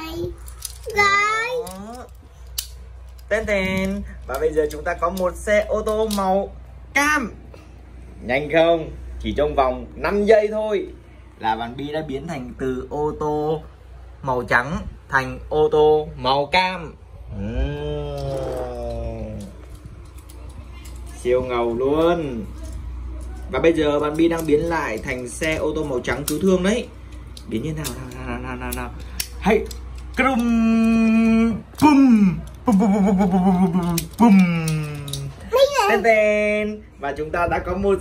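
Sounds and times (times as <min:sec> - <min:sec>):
short wavering vocal sound: 0:17.3 - 0:19.6.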